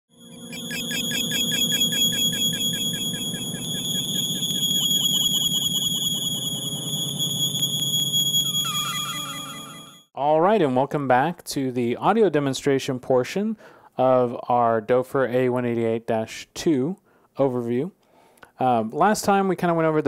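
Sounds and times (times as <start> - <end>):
high whistling tone: 0.1 - 10.1
synthesizer music: 0.1 - 10.1.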